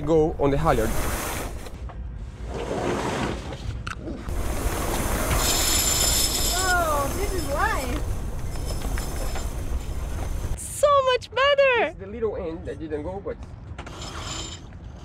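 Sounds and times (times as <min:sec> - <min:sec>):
sailcloth and line rushing: 0:04.3 - 0:10.6.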